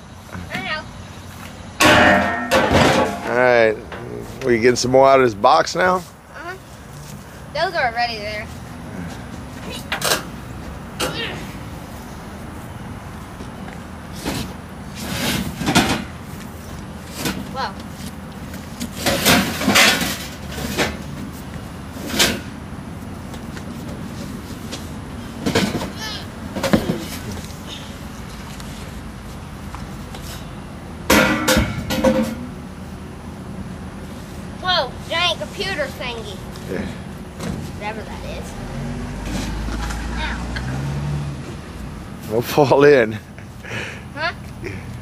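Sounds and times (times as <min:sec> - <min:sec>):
steady low hum: 0:00.0 - 0:40.5
metal duct pieces clanking: 0:01.8 - 0:04.1, 0:18.9 - 0:21.0, 0:31.1 - 0:32.5
pipes knocking and scraping: 0:01.8 - 0:04.6, 0:31.1 - 0:32.5.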